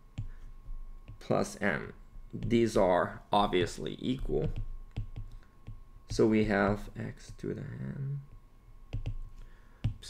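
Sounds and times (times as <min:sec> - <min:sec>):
stylus tapping on glass screen: 0:04.4 - 0:06.8.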